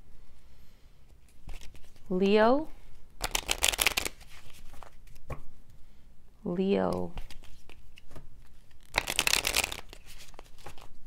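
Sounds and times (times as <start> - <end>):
cards being shuffled: 1.2 - 2.1, 3.2 - 5.5, 6.9 - 11.0.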